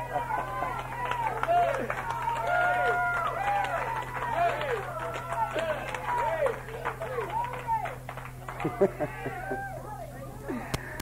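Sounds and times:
faint voices: 0.0 - 11.0
low recording hum: 0.0 - 11.0.

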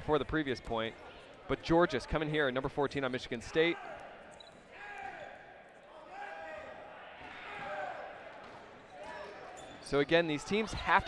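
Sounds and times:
players shouting in distance: 3.7 - 10.9.

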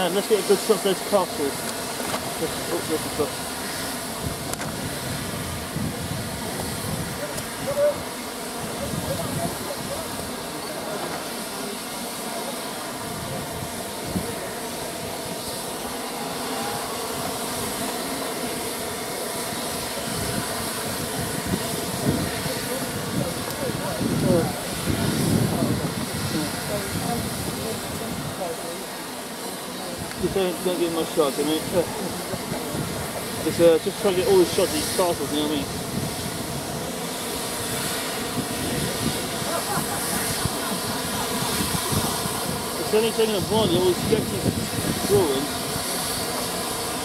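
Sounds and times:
crowd talking: 0.0 - 47.0
steam venting hiss: 0.0 - 47.0.

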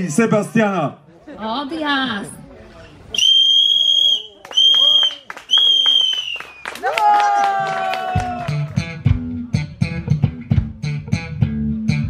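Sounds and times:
shrill whistle blasts: 3.2 - 6.8.

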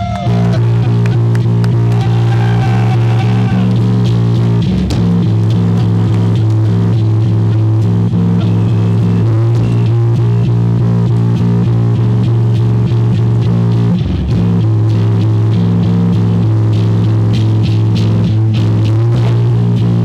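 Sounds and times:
bass: 0.0 - 20.0
distorted electric guitar: 0.0 - 20.0
low drone: 0.0 - 20.0.

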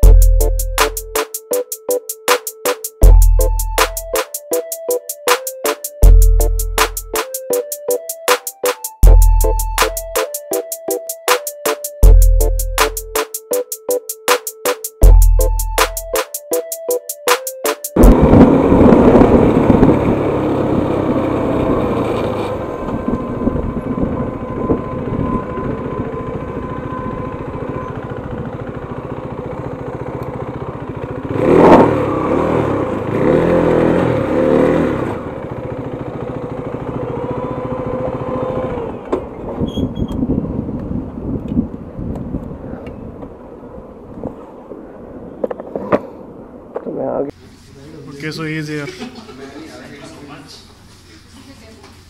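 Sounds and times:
motorcycle engine running: 0.0 - 0.5, 18.0 - 39.1.

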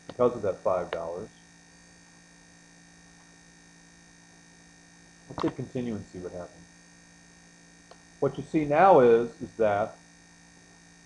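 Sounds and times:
faint electrical hum with hiss: 0.0 - 11.0.

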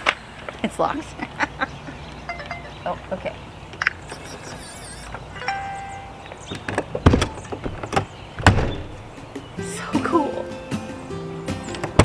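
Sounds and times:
wavering keypad chime: 2.3 - 2.8, 4.2 - 6.3.

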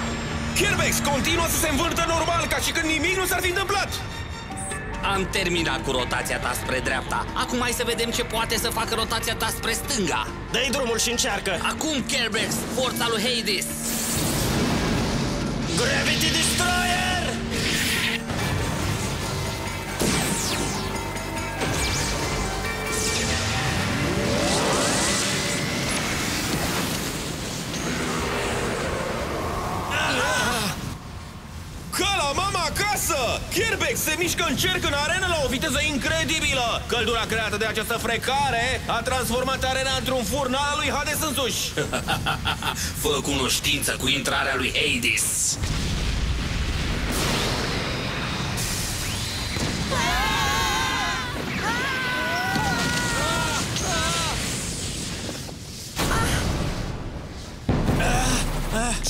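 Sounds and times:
low rumbling cartoon explosion: 56.0 - 59.0.

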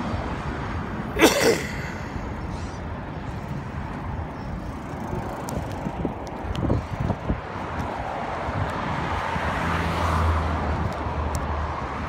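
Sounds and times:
traffic: 0.0 - 12.0
wind: 0.0 - 12.0.

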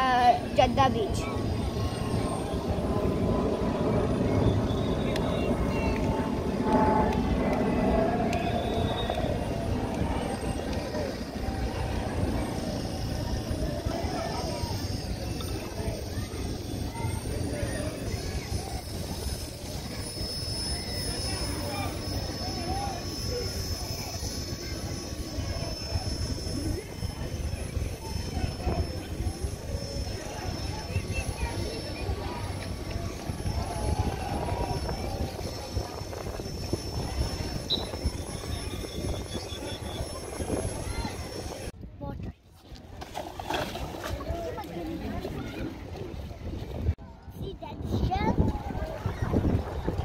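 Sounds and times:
wind rumbling on microphone: 0.0 - 50.0.

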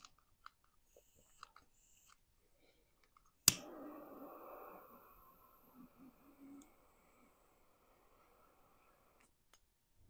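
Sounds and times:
torch lighter hissing: 3.5 - 9.3
faint low hums: 3.5 - 9.6.

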